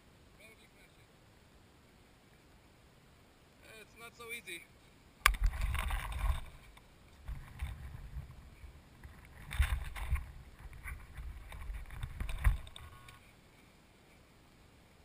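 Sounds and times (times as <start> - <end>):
wind buffeting microphone: 7.2 - 12.9.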